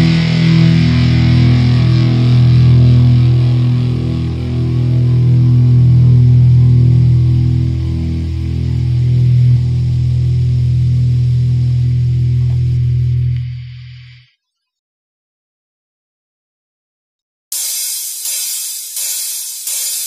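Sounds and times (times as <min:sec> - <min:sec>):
distorted rock chord ringing: 0:00.0 - 0:14.0
steady hum: 0:00.0 - 0:14.3.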